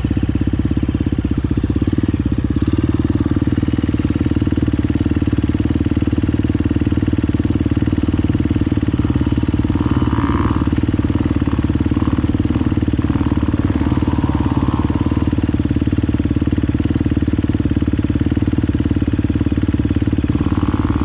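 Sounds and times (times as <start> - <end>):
dirt bike engine running: 0.0 - 21.0.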